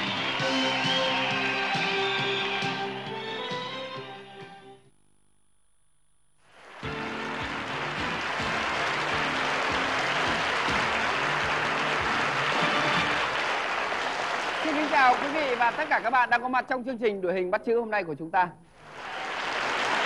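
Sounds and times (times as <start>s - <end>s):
studio audience applauding: 0.0s - 3.1s, 6.4s - 16.5s, 18.8s - 20.0s
music playing: 0.0s - 4.8s, 6.6s - 15.6s.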